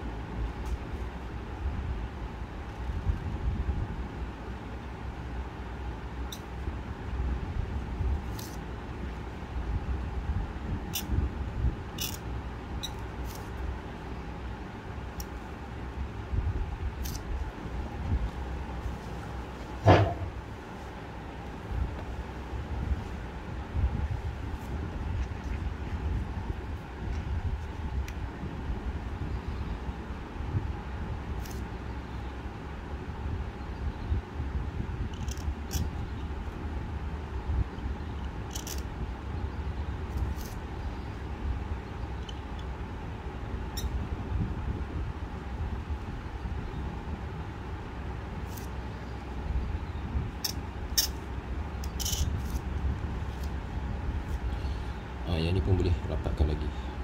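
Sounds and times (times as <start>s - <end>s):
low background rumble: 0.0s - 57.0s.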